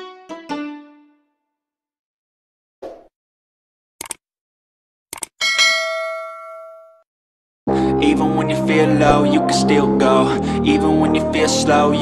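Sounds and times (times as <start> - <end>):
multi-tone bell ding: 5.4 - 7.0.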